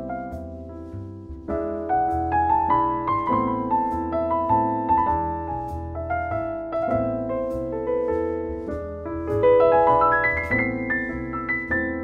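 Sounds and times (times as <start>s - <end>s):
solo piano melody: 0.0s - 12.0s.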